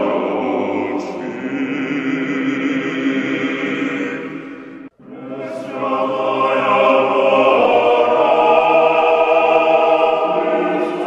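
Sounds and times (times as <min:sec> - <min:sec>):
male choir singing sacred chant: 0:00.0 - 0:11.0.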